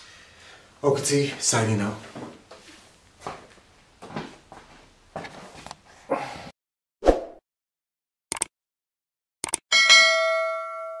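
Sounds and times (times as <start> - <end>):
notification bell chime: 9.7 - 11.0.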